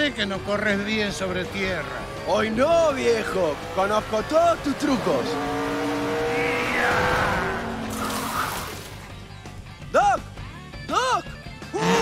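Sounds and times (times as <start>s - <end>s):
race car engines running hard: 0.0s - 9.2s.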